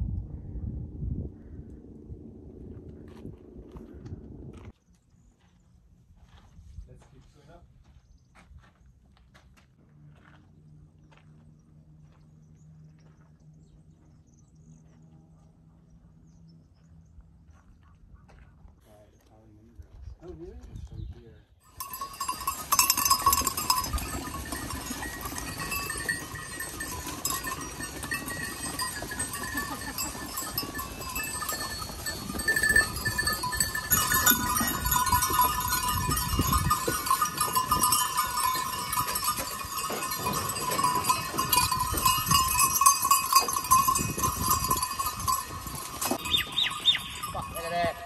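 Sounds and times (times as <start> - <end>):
goat bells clanking and jingling: 21.7 - 48.0.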